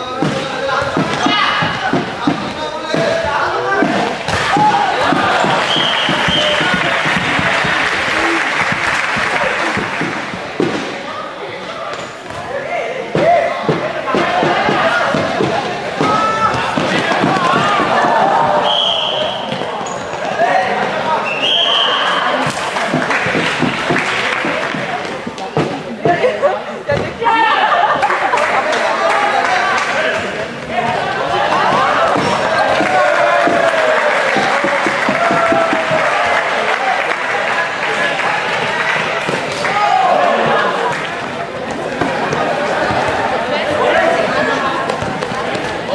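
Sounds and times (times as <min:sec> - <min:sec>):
players and spectators shouting: 0:00.0 - 0:10.0, 0:12.5 - 0:24.4, 0:26.9 - 0:45.9
ball bouncing on court floor: 0:00.2 - 0:07.8, 0:44.9 - 0:45.8.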